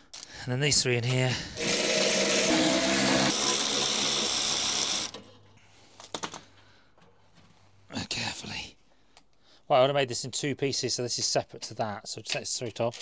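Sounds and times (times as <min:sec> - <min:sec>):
electric power tool motor running: 0:01.6 - 0:05.1.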